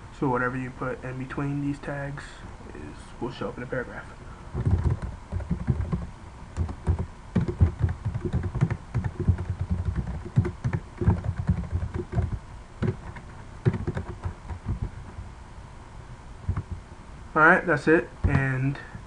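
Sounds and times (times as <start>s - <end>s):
typing on computer keyboard: 4.6s - 14.9s.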